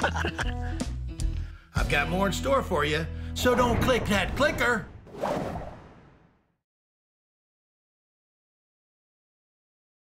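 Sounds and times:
transition whoosh: 4.9 - 6.4.

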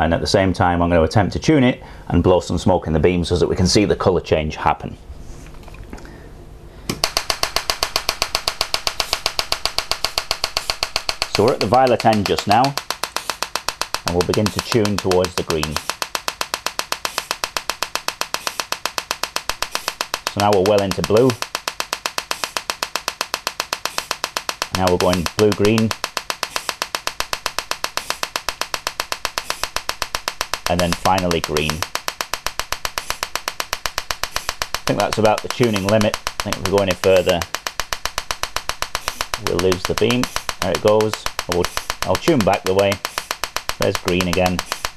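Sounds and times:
laser electrical snaps: 6.9 - 44.9.

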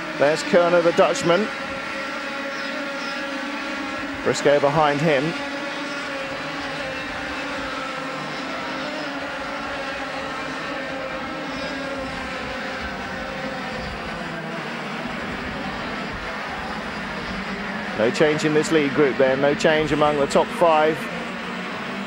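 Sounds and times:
kart engines racing at high revs: 0.0 - 22.0.

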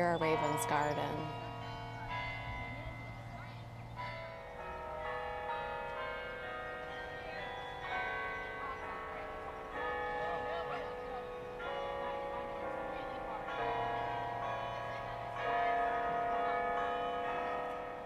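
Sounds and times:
slow ringing bell-like music: 0.0 - 18.0.

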